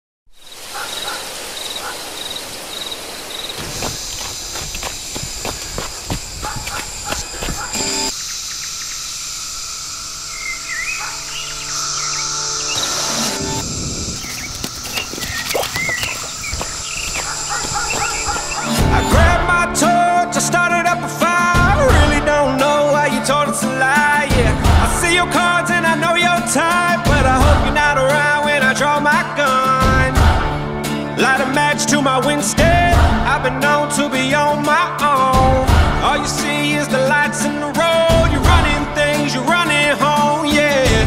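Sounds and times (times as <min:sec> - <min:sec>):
bird chirps: 0:00.3 - 0:19.1
crickets droning: 0:00.3 - 0:19.1.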